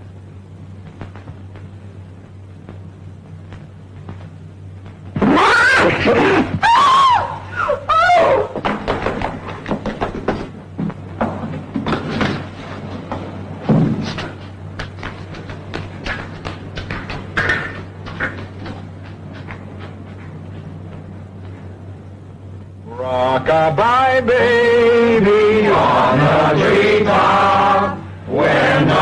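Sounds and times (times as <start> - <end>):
low soundtrack hum: 0.0 - 8.6, 12.5 - 29.0
woman screaming: 5.3 - 8.6
irregular thumps and knocks: 8.6 - 20.4.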